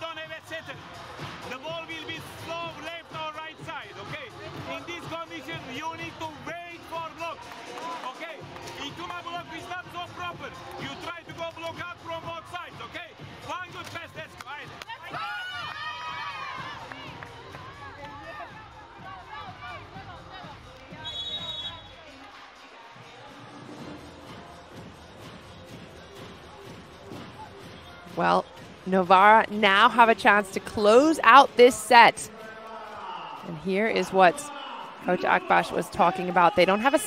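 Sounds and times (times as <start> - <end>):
faint crowd noise: 0.0 - 37.0
arena music: 15.8 - 37.0.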